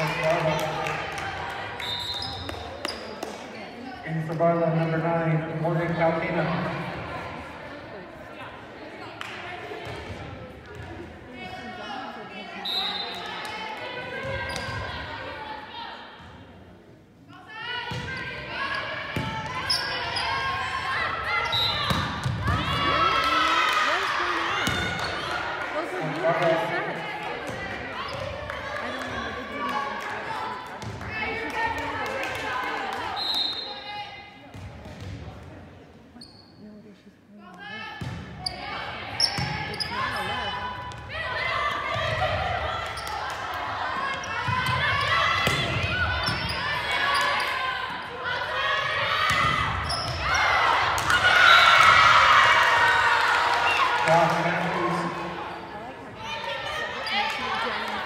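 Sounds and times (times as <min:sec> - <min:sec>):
people shouting and cheering: 0:00.0 - 0:02.8, 0:17.4 - 0:34.4, 0:38.6 - 0:58.0
volleyball hits and thuds: 0:44.5 - 0:46.4.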